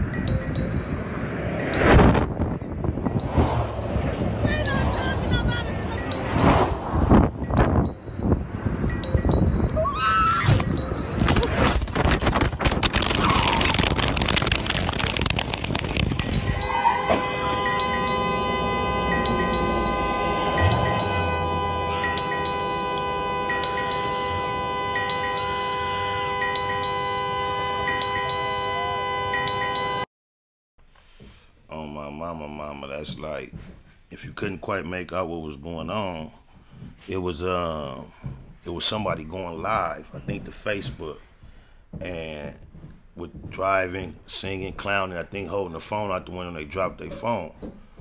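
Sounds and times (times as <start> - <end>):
mobile phone ringtone: 0.0 - 2.0, 5.8 - 10.0, 17.6 - 24.4, 25.0 - 27.2, 27.9 - 30.0
freeway traffic rushing: 0.0 - 30.0.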